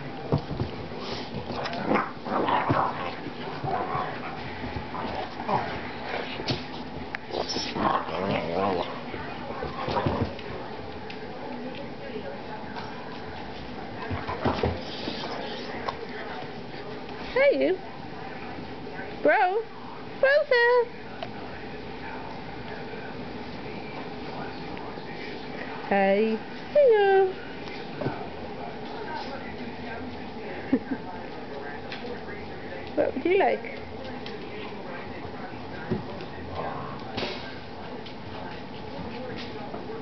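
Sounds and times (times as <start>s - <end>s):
paws thudding and scrabbling on floor: 0.1s - 11.9s, 12.8s - 17.3s.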